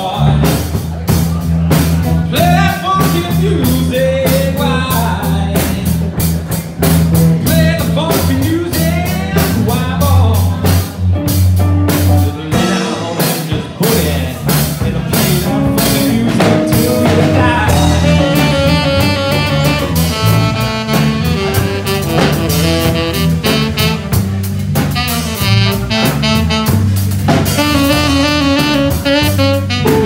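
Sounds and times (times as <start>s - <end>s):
man singing into a microphone: 0.0s - 0.8s, 2.2s - 6.3s, 7.4s - 11.1s, 12.3s - 20.2s
drum kit keeping a steady beat: 0.0s - 30.0s
electric bass: 0.0s - 30.0s
electric guitar: 0.0s - 30.0s.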